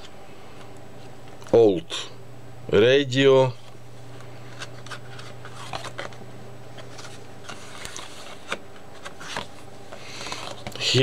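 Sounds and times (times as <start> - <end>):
steady low hum: 0.0 - 11.0
paper pages rustling: 3.5 - 11.0.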